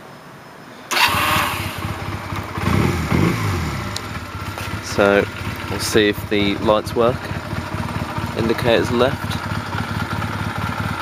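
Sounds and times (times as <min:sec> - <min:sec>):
motorcycle engine starting and running: 0:00.9 - 0:11.0.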